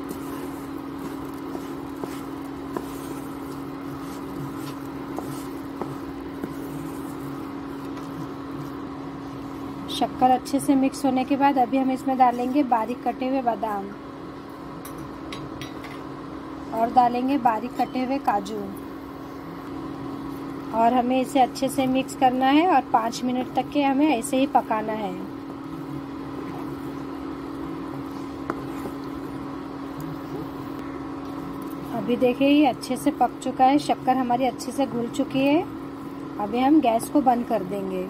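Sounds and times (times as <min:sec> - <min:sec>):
spatula scraping thick mixture: 0:00.0 - 0:10.0, 0:12.1 - 0:12.8, 0:25.5 - 0:30.8
induction cooktop humming: 0:00.0 - 0:38.0.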